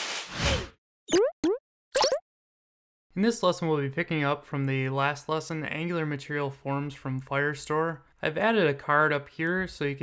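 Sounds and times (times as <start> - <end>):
cartoon pop sound effects: 1.1 - 2.2.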